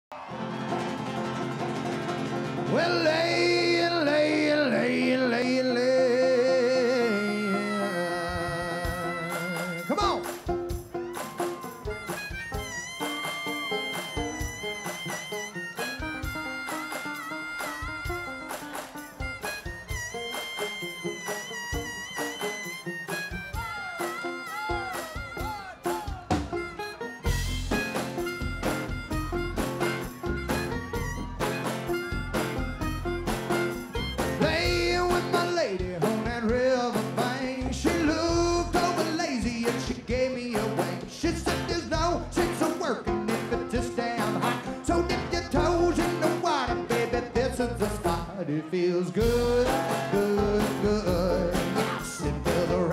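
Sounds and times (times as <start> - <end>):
strummed acoustic guitar: 0.5 - 52.9
man singing: 2.6 - 10.1, 34.4 - 52.9
harmonica solo: 4.1 - 40.4, 41.2 - 52.9
steady drum beat: 8.4 - 48.3, 49.2 - 52.9.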